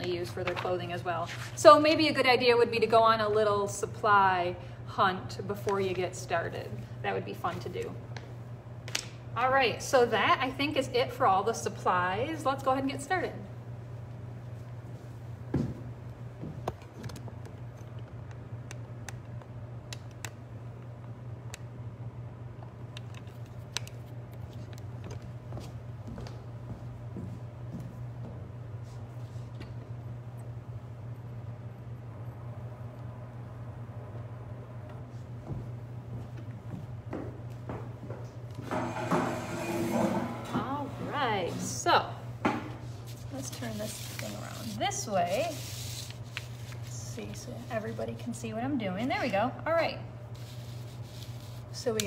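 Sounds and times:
low room hum: 0.0 - 52.0
metal chair scraping and squeaking: 38.6 - 41.8.

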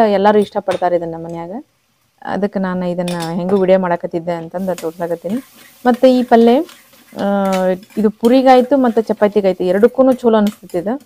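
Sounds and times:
gravy sizzling in a pan: 3.9 - 11.0
spatula stirring in a pan: 4.5 - 11.0.

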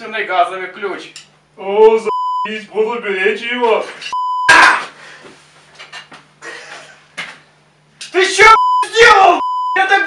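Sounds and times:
censor bleep: 2.1 - 2.5, 4.2 - 4.5, 8.5 - 9.9.

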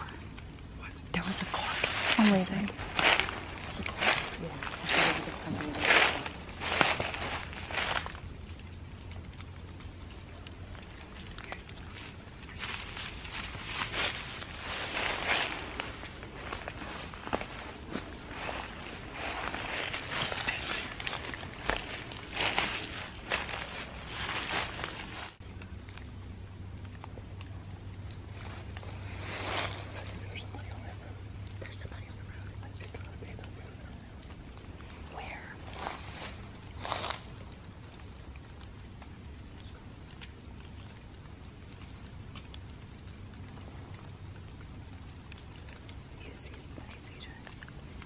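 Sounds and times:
hushed whispering: 0.0 - 8.0, 10.9 - 12.8, 18.3 - 23.6, 29.1 - 36.3, 46.1 - 47.7
low steady hum: 0.0 - 48.0
shuffling footsteps: 1.4 - 8.7, 10.4 - 25.4.

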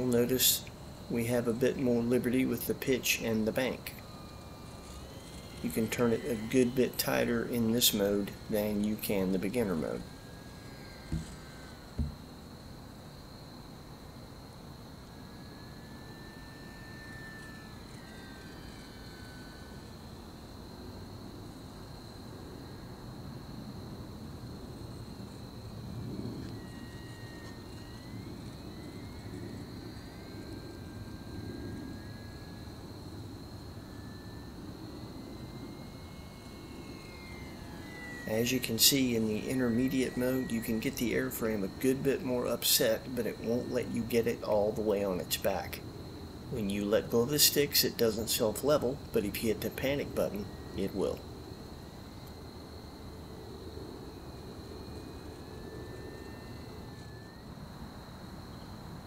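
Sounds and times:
model airplane motor whining: 0.0 - 59.0
short knocks: 12.0 - 12.2.

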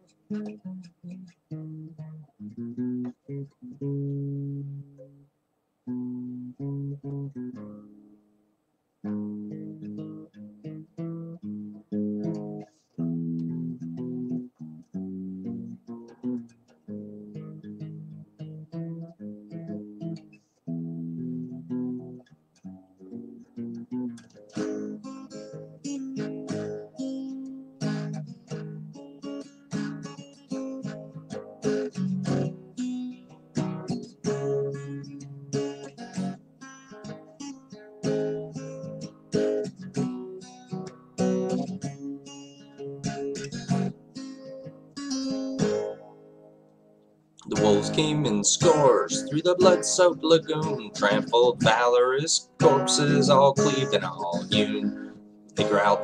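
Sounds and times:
acoustic guitar strumming: 0.0 - 5.3, 5.9 - 8.2, 9.0 - 56.0.

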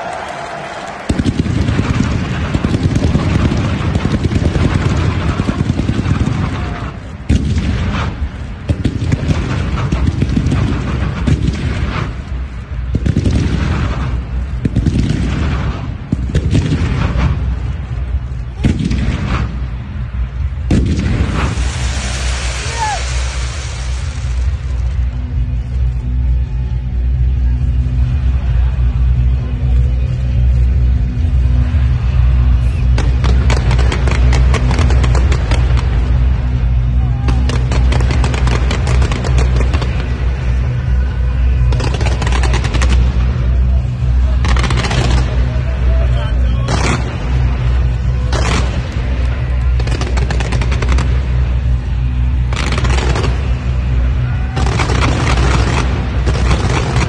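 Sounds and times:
fireworks crackling: 0.0 - 57.0
fireworks booming: 0.8 - 25.9, 30.1 - 57.0
music with heavy bass: 16.6 - 57.0
fireworks hissing: 20.9 - 25.2.

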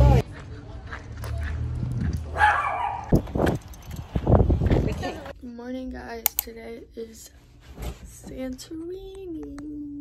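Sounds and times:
low rumble of street traffic: 0.0 - 10.0
dog bark: 2.3 - 3.1.

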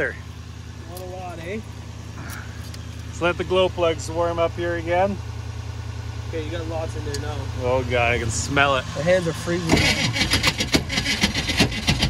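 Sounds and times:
engine idling: 0.0 - 12.0.

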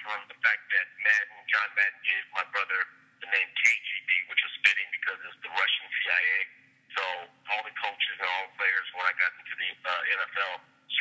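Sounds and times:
faint steady hum: 0.0 - 11.0
man speaking over telephone: 0.0 - 11.0.

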